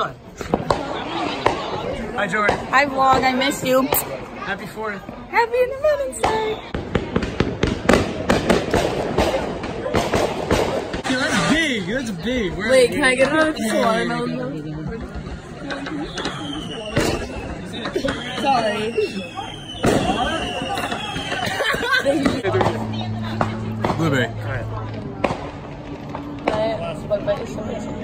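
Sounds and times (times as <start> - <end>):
fireworks popping and crackling: 0.0 - 12.6, 14.8 - 27.9
people talking: 11.0 - 25.5.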